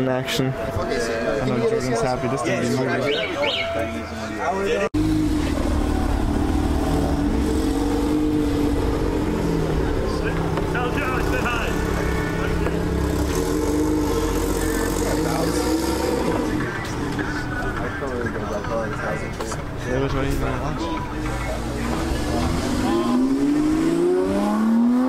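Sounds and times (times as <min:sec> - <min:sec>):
people talking: 0:00.0 - 0:04.9, 0:09.8 - 0:12.8, 0:14.7 - 0:23.8
car engine running: 0:04.9 - 0:24.6.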